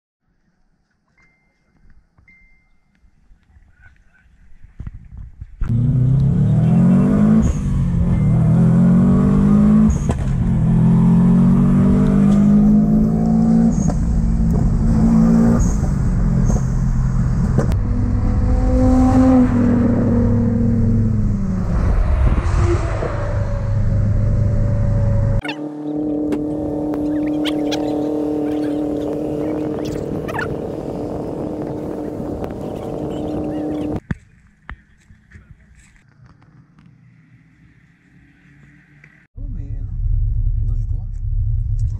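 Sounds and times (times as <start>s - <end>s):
car engine revving hard: 5.7s - 34.0s.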